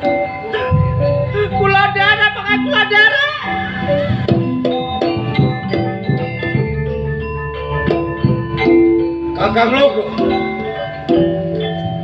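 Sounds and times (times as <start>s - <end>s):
gamelan metallophone melody: 0.0s - 12.0s
low struck notes: 0.6s - 12.0s
person singing with vibrato: 0.8s - 4.0s.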